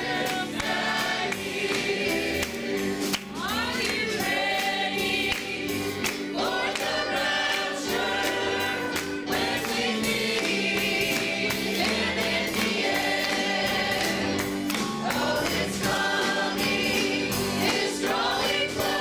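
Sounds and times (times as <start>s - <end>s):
accompaniment with steady beat: 0.0s - 19.0s
gospel choir singing: 0.0s - 19.0s.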